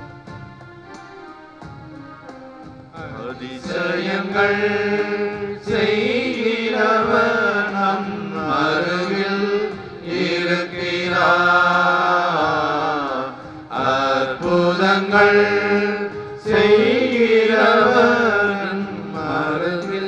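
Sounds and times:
man singing into microphone: 3.0s - 20.0s.

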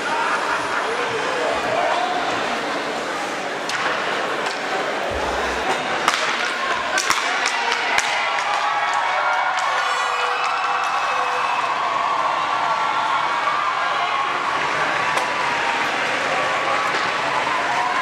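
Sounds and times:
crowd chattering and cheering: 0.0s - 18.0s.

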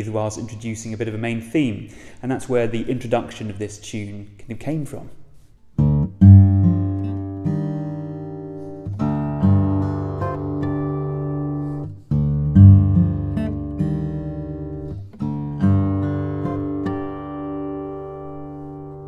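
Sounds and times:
fingerpicked acoustic guitar: 5.4s - 19.0s.

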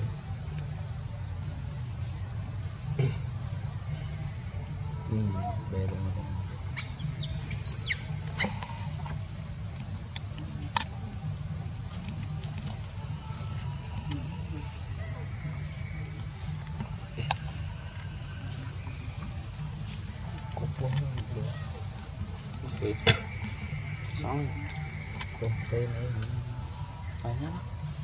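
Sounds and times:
insects buzzing: 0.0s - 28.0s.

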